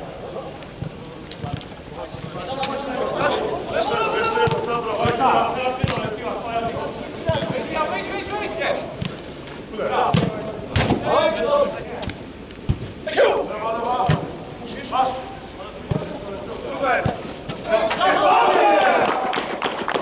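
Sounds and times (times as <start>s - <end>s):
football kick thuds: 5.8s - 6.2s, 10.1s - 11.1s, 12.0s - 13.0s
men calling out: 13.0s - 14.0s.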